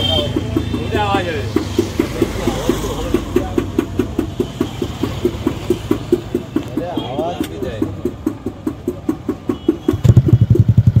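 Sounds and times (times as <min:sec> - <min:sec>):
scooter engine idling: 0:00.0 - 0:11.0.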